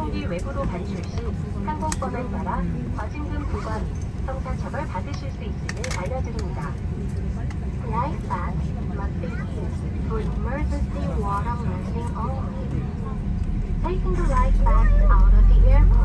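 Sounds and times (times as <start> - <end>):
airliner engine rumble: 0.0 - 16.0
passenger voices talking: 0.0 - 16.0.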